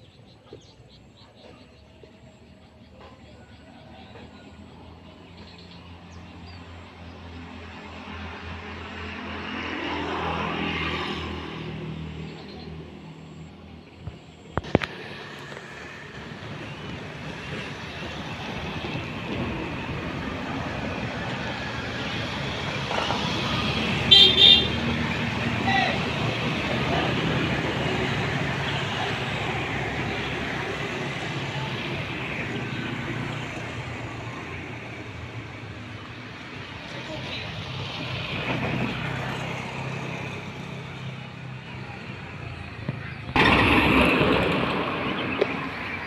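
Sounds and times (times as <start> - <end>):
vehicle horn toots: 24.0 - 25.0.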